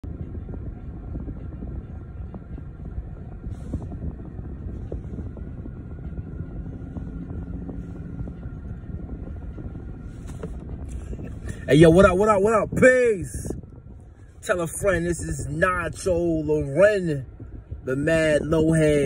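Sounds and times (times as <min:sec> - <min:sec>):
low rumble inside car cabin: 0:00.0 - 0:19.0.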